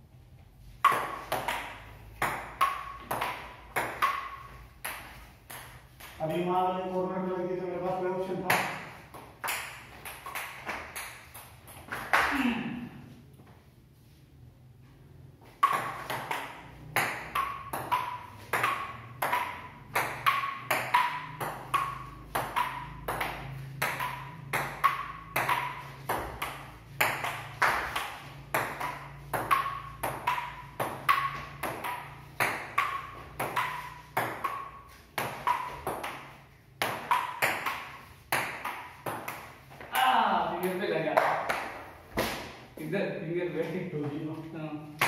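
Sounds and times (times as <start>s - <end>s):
table tennis ball tapping: 0.7s - 7.0s, 7.8s - 12.3s, 15.4s - 42.3s.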